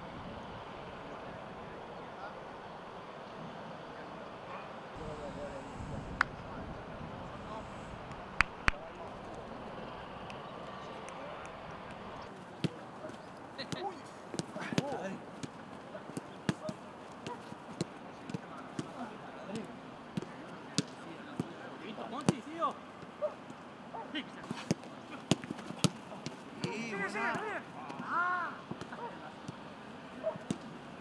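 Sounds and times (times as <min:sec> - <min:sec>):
football kicks thudding: 0:12.6 - 0:18.9, 0:24.6 - 0:27.5
players shouting: 0:23.4 - 0:30.9.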